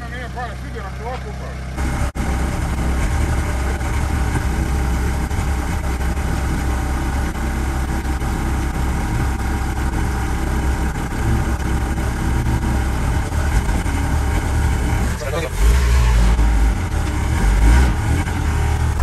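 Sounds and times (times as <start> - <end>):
diesel van engine droning: 0.0 - 19.0
road noise: 0.0 - 19.0.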